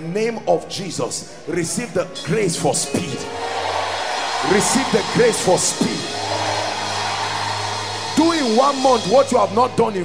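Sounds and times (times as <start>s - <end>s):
low music drone: 2.2s - 10.0s.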